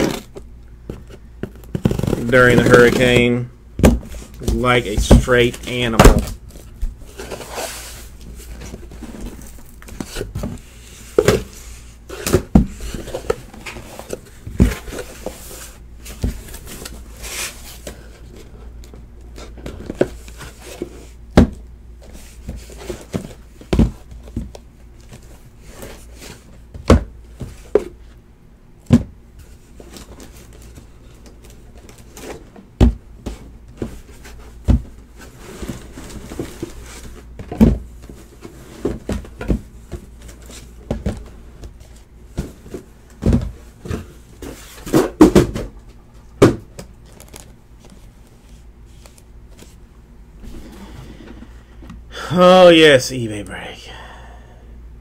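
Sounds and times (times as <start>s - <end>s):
cardboard rustling: 4.0s - 21.2s, 46.2s - 51.5s
cardboard boxes knocking on table: 34.6s - 35.0s, 42.3s - 45.8s.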